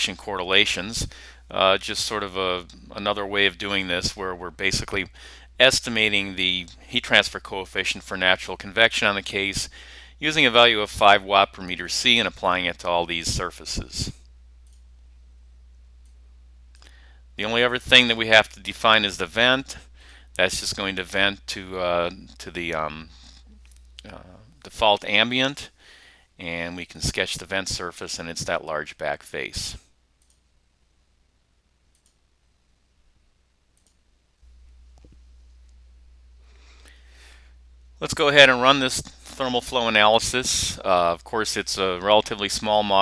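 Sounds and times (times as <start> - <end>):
low steady hum: 0.0 - 43.0
computer mouse clicks: 14.6 - 14.8, 30.2 - 30.4, 31.9 - 32.2, 33.8 - 34.0.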